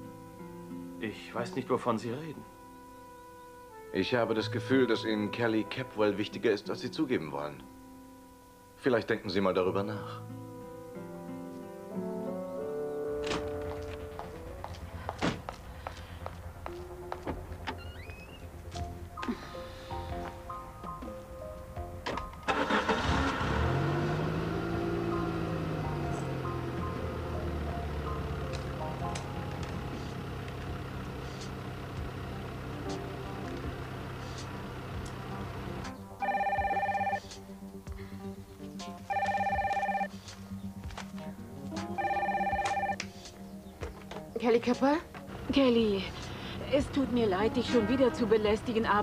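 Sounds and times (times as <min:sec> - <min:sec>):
background music with held notes: 0:00.0 - 0:49.0
car door opening: 0:13.2 - 0:14.1, 0:22.0 - 0:23.0
person climbing into car seat: 0:13.2 - 0:15.7.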